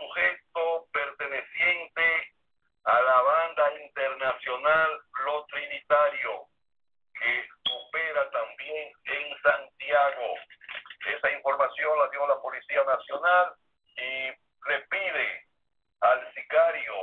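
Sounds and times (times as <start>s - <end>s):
person speaking over telephone: 0.0s - 6.6s, 7.2s - 17.0s.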